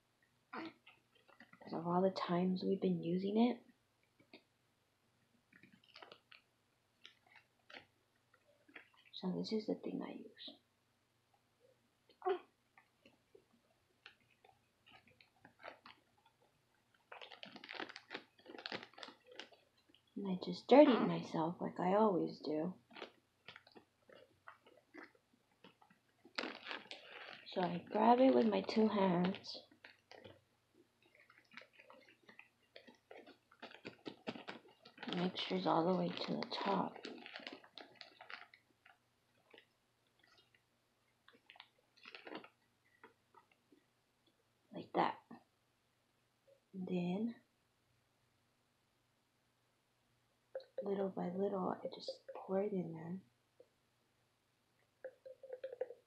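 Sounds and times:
plastic items clicking and crinkling: 5.5s - 9.2s, 14.0s - 20.2s, 22.9s - 30.4s, 31.0s - 40.6s, 41.3s - 43.6s, 55.0s - 56.0s.

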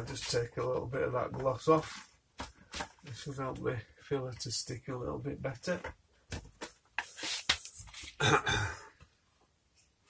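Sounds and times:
sanding sponge scuffing paint: 7.0s - 7.9s
man clearing throat: 8.2s - 9.0s.

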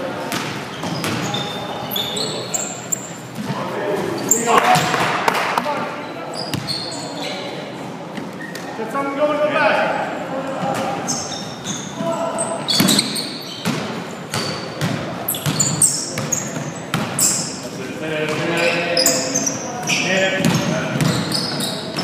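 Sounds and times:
sneakers squeaking: 0.1s - 8.8s, 10.1s - 22.0s.

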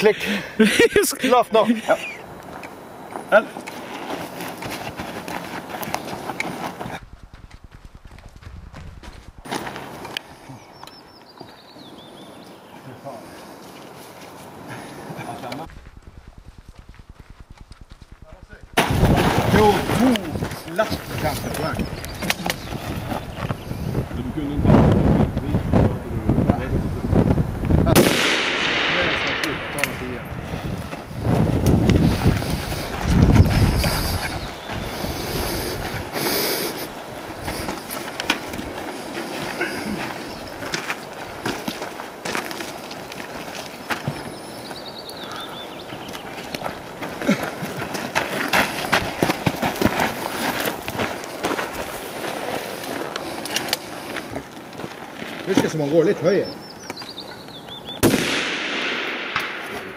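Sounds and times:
wind buffeting microphone: 4.6s - 9.5s, 15.6s - 41.8s
rifle shots: 27.9s - 30.2s, 58.0s - 59.9s.

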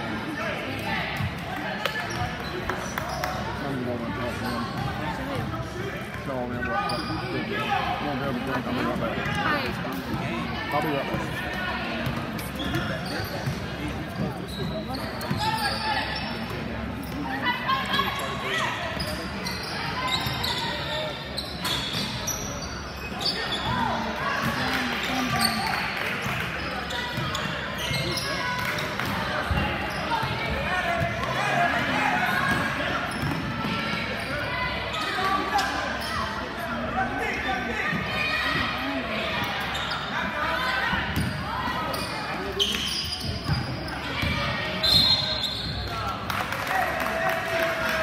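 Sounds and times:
shouting and chatter: 0.0s - 48.0s
basketball bouncing on court: 32.5s - 34.0s, 43.3s - 44.5s.

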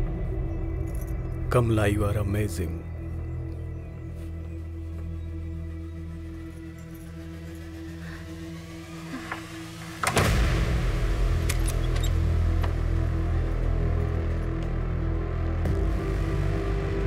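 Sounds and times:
dramatic film score drone: 0.0s - 17.0s.

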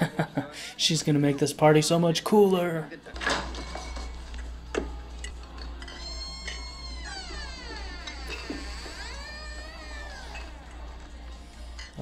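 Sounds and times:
door hinges creaking: 5.9s - 11.2s.

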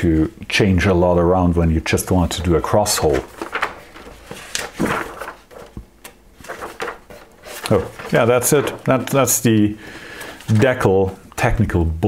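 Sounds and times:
binder pages turning: 1.8s - 11.4s.

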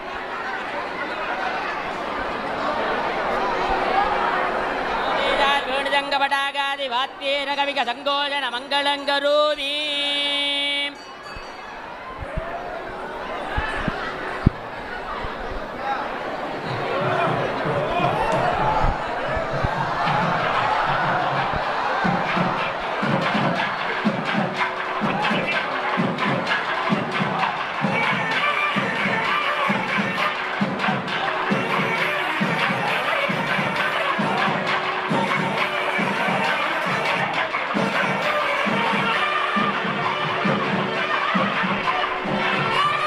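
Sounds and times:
crowd murmuring and calling out: 0.0s - 43.0s
drumming: 16.5s - 43.0s.

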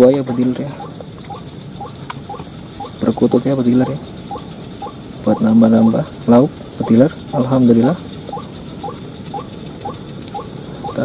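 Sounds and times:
high-pitched hiss: 0.0s - 11.0s
small animal chirping: 0.0s - 11.0s.

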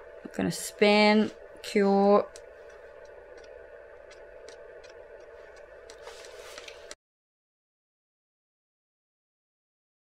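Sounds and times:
nail curing lamp humming: 0.0s - 7.0s.

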